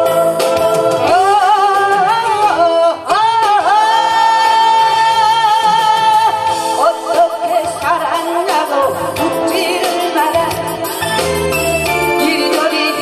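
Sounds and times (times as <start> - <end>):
backing music: 0.0 - 13.0
woman singing into a microphone: 0.0 - 13.0.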